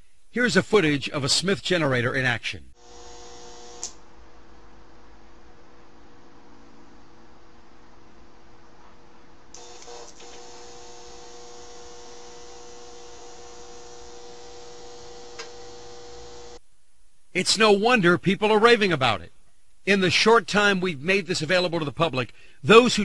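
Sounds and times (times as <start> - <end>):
electrical hum with steady tones: 0.0 - 23.0.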